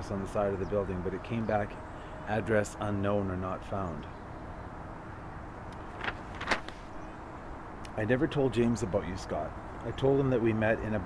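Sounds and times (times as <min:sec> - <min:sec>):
paper being handled: 0:05.8 - 0:07.0
paper crackles: 0:05.8 - 0:07.0.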